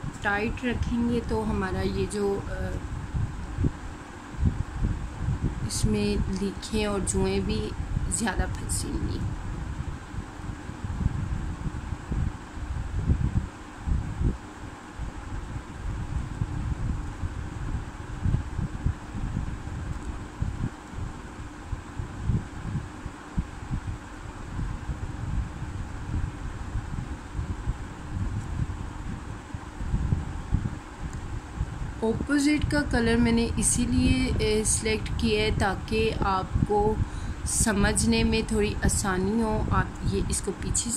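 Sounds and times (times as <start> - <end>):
background hum and hiss: 0.0 - 40.9
low wind rumbling on microphone: 0.0 - 40.9.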